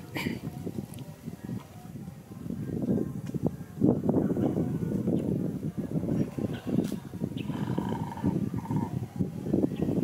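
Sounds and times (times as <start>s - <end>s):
dog growling: 7.5s - 9.0s.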